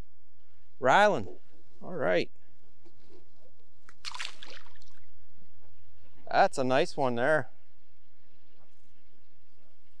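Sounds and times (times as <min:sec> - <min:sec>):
fish splashing into water: 0:04.0 - 0:05.0.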